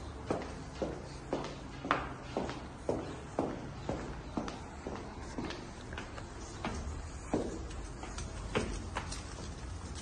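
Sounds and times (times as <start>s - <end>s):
footsteps on tile floor: 0.0s - 10.0s.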